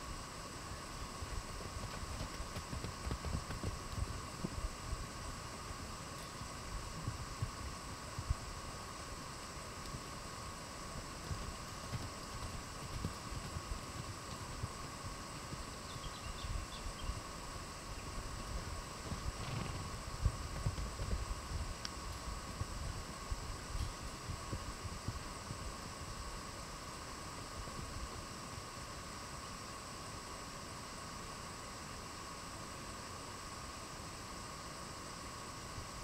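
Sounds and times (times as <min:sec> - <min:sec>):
steady hum: 0:00.0 - 0:36.0
hoofbeats on sand: 0:01.0 - 0:08.5, 0:09.9 - 0:17.2, 0:18.5 - 0:26.3.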